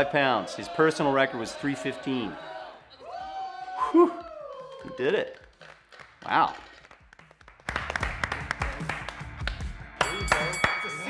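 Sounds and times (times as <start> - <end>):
people clapping: 3.1 - 11.0
background music: 5.8 - 11.0.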